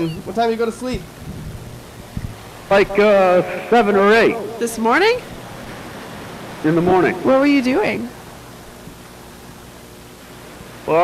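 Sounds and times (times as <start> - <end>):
low background hiss: 0.0 - 11.0
person speaking: 2.7 - 5.3.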